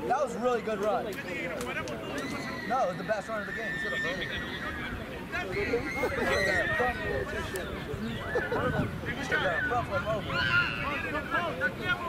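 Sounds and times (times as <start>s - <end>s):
men calling out: 2.0s - 12.0s.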